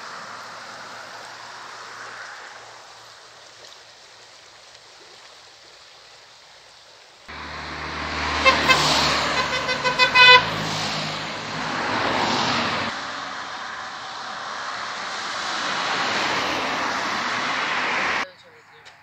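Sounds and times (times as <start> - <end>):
broad vehicle noise: 0.0 - 3.2, 7.3 - 19.0
low engine rumble: 7.3 - 18.6
short horn toots: 7.4 - 11.5.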